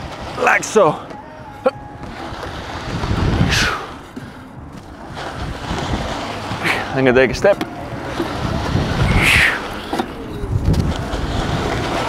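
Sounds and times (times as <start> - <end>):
wind on microphone: 1.6 - 12.0
sled scraping on rubber floor: 2.0 - 12.0.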